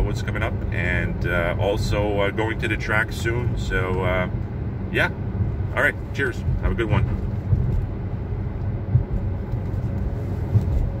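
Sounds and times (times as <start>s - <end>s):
car engine rumble: 0.0s - 11.0s
road noise: 0.0s - 11.0s
low bumps: 2.9s - 11.0s.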